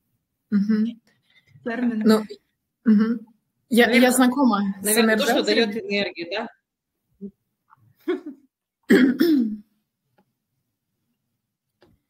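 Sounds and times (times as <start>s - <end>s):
person clearing throat: 8.9s - 9.7s.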